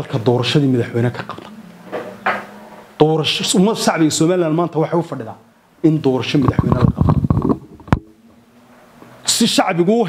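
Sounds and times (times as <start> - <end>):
man's creaky voice: 0.0 - 1.6.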